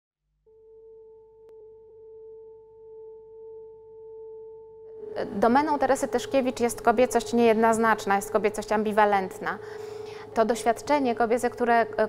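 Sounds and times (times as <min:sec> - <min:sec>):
steady pure tone: 0:00.5 - 0:12.0.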